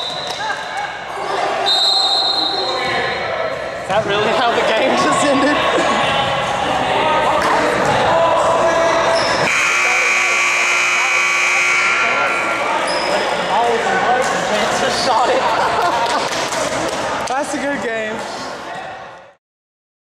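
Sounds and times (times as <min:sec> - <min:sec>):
scoreboard buzzer: 0:09.4 - 0:12.6.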